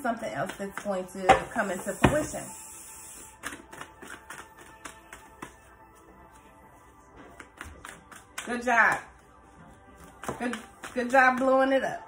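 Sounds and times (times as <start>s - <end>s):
cards being shuffled: 3.4s - 6.5s, 7.2s - 8.5s.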